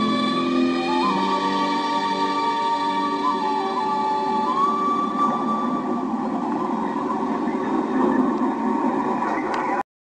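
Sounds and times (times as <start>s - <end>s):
orchestral chord: 0.0s - 5.8s.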